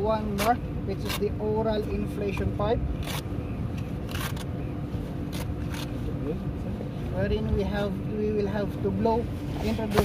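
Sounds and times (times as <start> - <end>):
fabric scraping rustles: 9.3 - 10.0.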